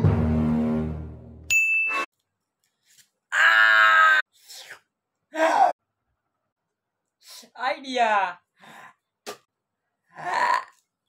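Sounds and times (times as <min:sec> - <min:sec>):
person burping: 0:10.2 - 0:10.8.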